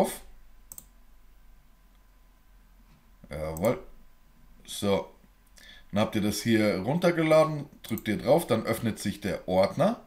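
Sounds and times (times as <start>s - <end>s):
computer mouse click: 0.7s - 1.0s.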